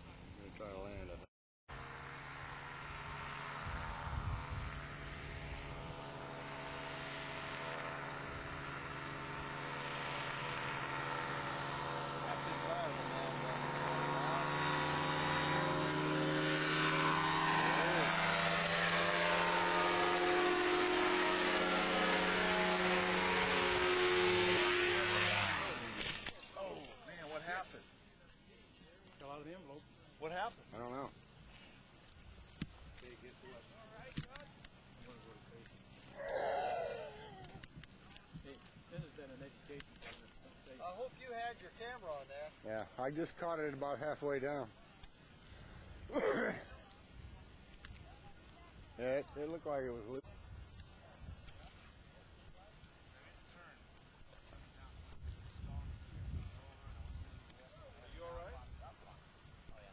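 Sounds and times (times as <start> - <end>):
engine and propeller running: 1.7 - 27.9.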